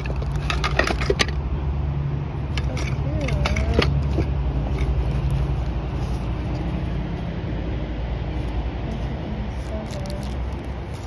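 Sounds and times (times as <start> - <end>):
engine idling hum: 0.0 - 11.0.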